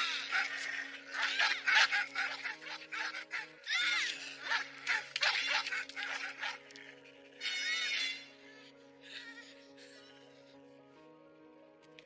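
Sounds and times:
film score sustained low notes: 0.0s - 12.0s.

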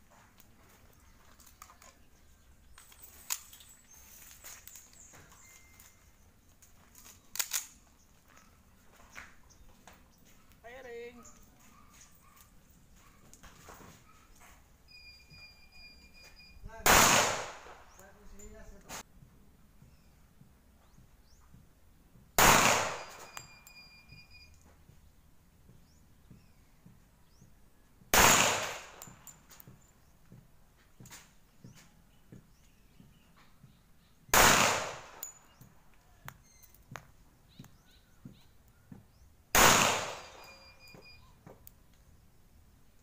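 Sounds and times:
pistol shot with echo: 16.8s - 18.0s, 22.4s - 23.4s, 28.1s - 29.2s, 34.3s - 35.4s, 39.5s - 40.8s
faint metallic ringing: 23.0s - 24.7s, 40.3s - 41.4s.

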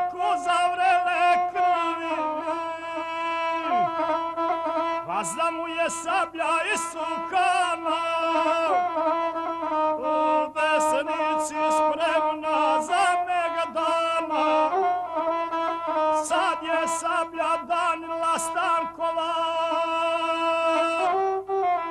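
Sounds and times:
man singing: 0.0s - 9.1s, 9.9s - 21.9s
bowed single-string fiddle: 0.0s - 21.9s.

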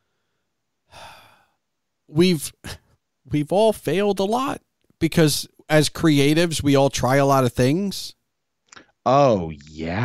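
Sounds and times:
person breathing: 0.0s - 1.6s.

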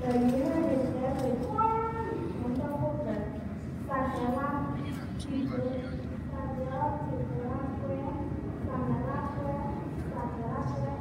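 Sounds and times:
girl speaking into a microphone: 0.0s - 11.0s.

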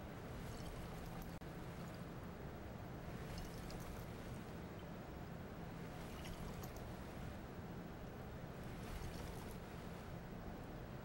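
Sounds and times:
steady low hum: 0.0s - 11.0s
water sloshing in glass flask: 0.4s - 2.0s, 3.1s - 4.2s, 5.9s - 6.9s, 8.8s - 9.7s.

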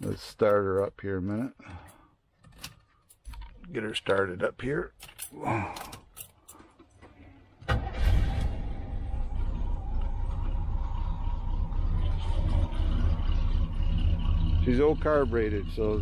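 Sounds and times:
engine starting and idling: 6.6s - 16.0s.

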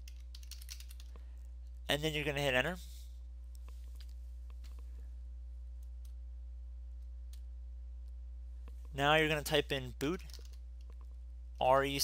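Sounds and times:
keyboard keys clicking: 0.0s - 1.1s
steady low hum: 0.0s - 12.0s.

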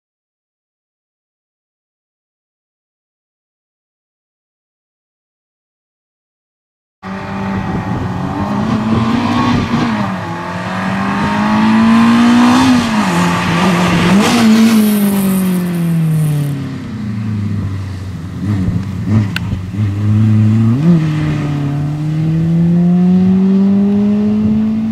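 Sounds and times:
car engine revving: 7.0s - 24.9s.

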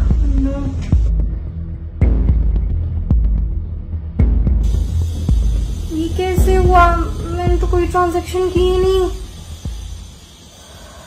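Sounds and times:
suspense music with bass drone: 0.0s - 11.0s
sharp rhythmic hits: 4.2s - 11.0s.

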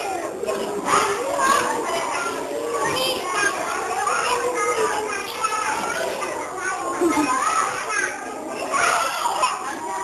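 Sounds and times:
young children chattering: 0.0s - 10.0s.

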